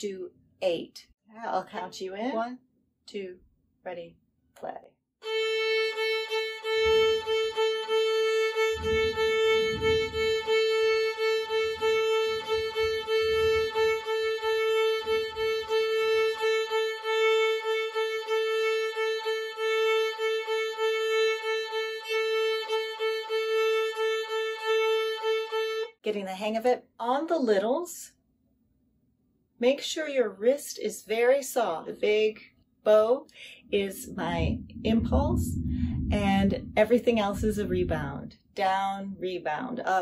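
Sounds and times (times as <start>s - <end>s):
violin bowing one open string: 5.2s - 25.9s.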